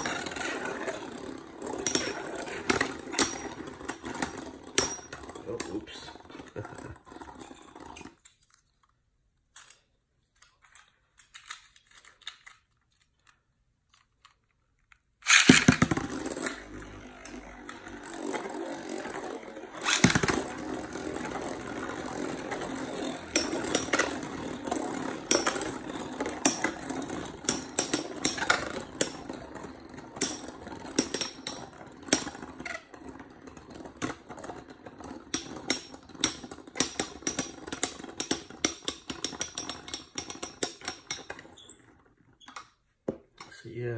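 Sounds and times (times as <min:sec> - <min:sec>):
spinning tops clacking together: 0:00.0 - 0:05.7, 0:15.2 - 0:32.7
spinning tops clattering on launch: 0:00.0 - 0:05.7, 0:15.2 - 0:32.6
spinning tops whirring: 0:00.0 - 0:08.2, 0:15.2 - 0:42.0.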